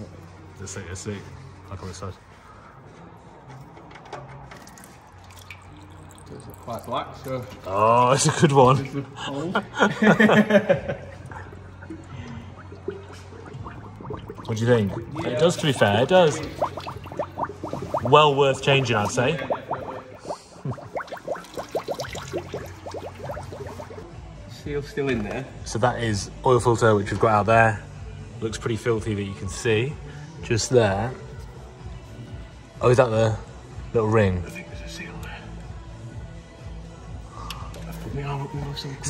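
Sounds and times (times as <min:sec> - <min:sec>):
oil running out: 0:04.5 - 0:08.9, 0:11.2 - 0:24.1.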